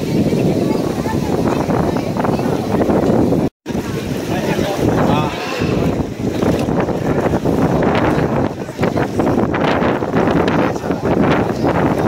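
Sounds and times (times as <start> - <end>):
crowd chatter: 0.0 - 12.0
wind buffeting microphone: 0.0 - 12.0.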